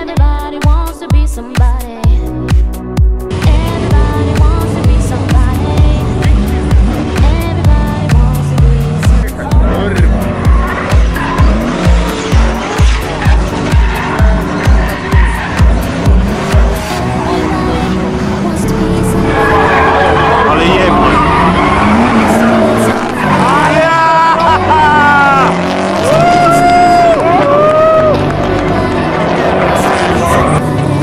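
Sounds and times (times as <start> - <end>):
music with steady bass beat: 0.0 - 18.2
car engine revving: 3.3 - 31.0
tyres squealing and skidding: 9.0 - 28.3, 28.9 - 30.7.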